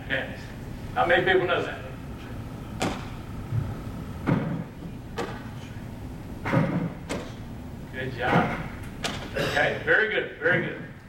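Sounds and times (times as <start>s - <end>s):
baseballs smacking into glove: 2.8s - 3.2s.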